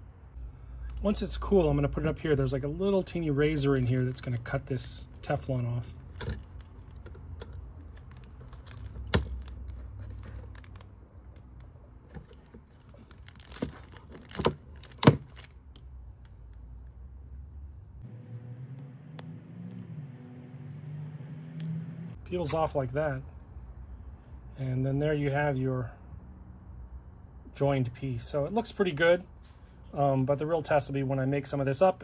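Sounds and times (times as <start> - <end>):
low rumble: 17.0 - 22.3.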